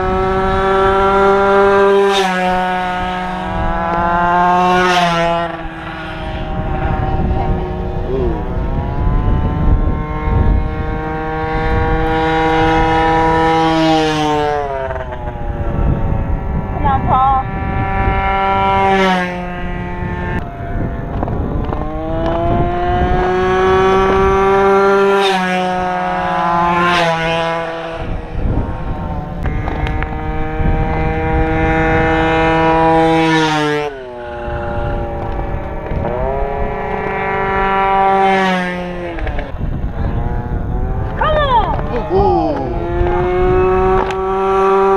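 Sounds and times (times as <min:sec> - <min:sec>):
racing mopeds passing by: 0:00.0 - 0:44.9.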